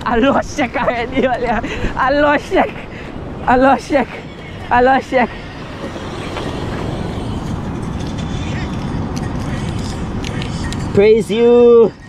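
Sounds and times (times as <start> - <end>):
surf rumbling: 0.0 - 9.2
wind: 0.0 - 12.0
faint ticks and scrapes: 5.8 - 11.0.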